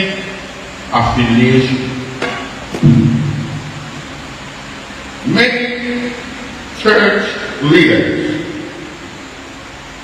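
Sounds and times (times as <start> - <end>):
steady background hiss: 0.0 - 10.0
man speaking: 0.9 - 2.1, 5.2 - 8.7.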